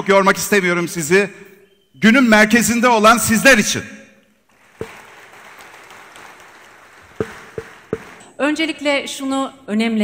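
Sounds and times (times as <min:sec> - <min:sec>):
audience applauding: 0:04.5 - 0:08.3.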